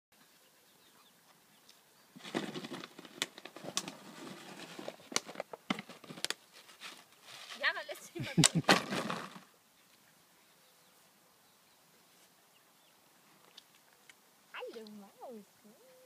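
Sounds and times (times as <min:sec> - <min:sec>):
plastic bottle crackling: 0:02.2 - 0:07.7, 0:08.4 - 0:09.5
dogs scuffling on grass: 0:02.2 - 0:08.1.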